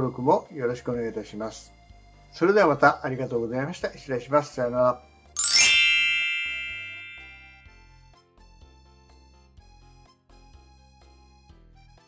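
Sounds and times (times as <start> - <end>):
bright chime sparkle: 5.4 - 7.6
ringing ding: 5.4 - 7.6.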